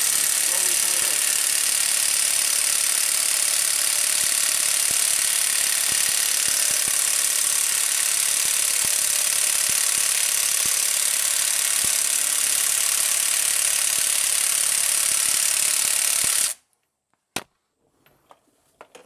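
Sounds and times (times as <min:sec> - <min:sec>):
impact wrench hammering: 0:00.0 - 0:16.6.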